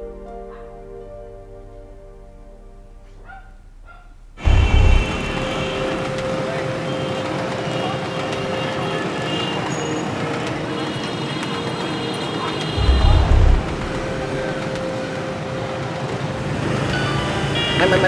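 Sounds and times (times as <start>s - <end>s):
motorbike and scooter traffic: 4.4s - 18.0s.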